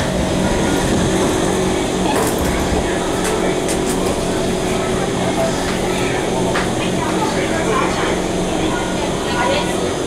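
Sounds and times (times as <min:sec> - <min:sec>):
train doors sliding open: 0:00.0 - 0:05.9
train carriage rumble and hum: 0:00.0 - 0:10.0.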